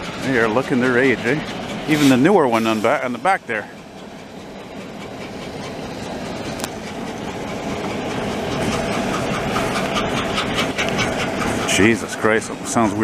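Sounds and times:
diesel locomotive running: 0.0 - 13.0
train wheels clacking over rails: 0.0 - 13.0.

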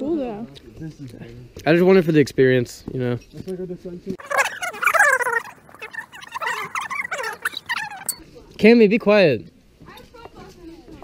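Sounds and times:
person squealing: 4.2 - 8.2.

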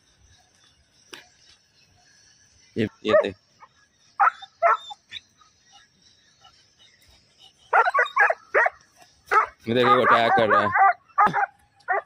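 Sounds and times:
dog barking: 4.2 - 5.0, 7.7 - 12.0.

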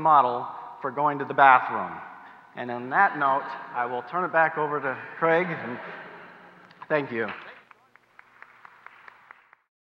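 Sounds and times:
audience applauding: 6.6 - 9.7.

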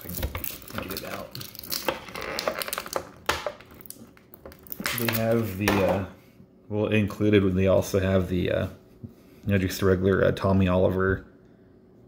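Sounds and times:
plastic packaging rustling: 0.0 - 5.7.

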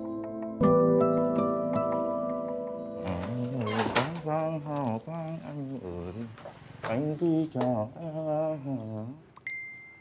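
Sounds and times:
soft background music: 0.0 - 4.7.

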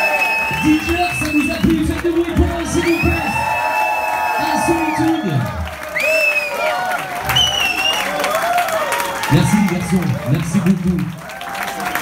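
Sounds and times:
audience applauding and cheering: 0.0 - 12.0.

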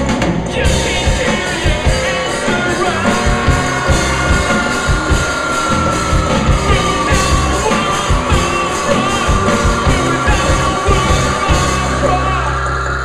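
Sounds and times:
loud live rock band: 0.0 - 13.0.

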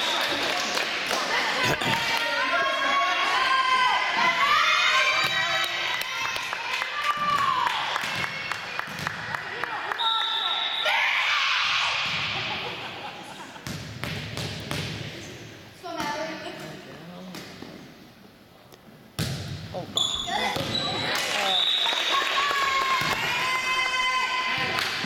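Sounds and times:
voices in a gym hall: 0.0 - 25.0
referee's whistle: 10.0 - 11.0, 20.0 - 22.1.

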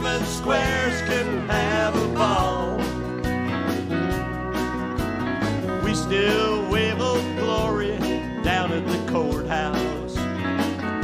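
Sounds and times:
man singing: 0.0 - 3.0, 5.8 - 10.2
drums: 0.0 - 11.0
electric guitar: 0.0 - 11.0
strummed acoustic guitar: 0.0 - 11.0.

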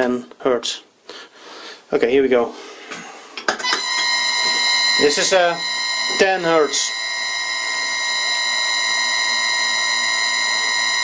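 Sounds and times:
electric motor whine: 3.8 - 11.0.

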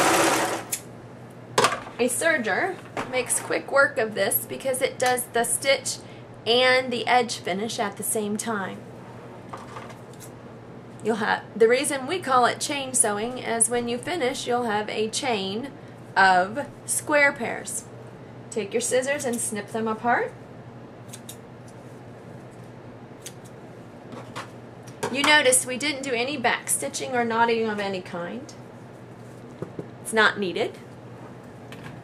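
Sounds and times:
scissors snipping thread: 21.1 - 21.4.

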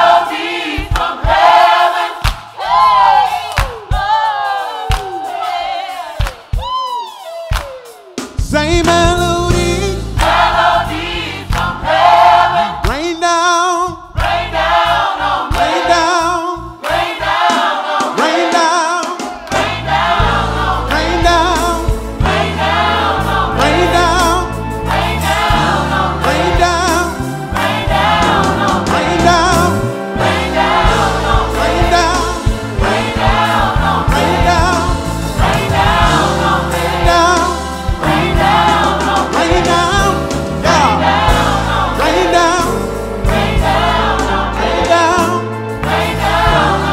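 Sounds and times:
gospel choir singing: 0.0 - 6.7, 7.5 - 46.9
steady beat and bass: 6.6 - 12.9, 19.6 - 46.9.

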